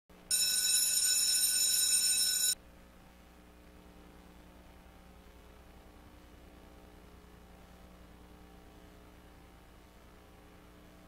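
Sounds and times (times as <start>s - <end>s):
faint low hum: 0.2s - 11.0s.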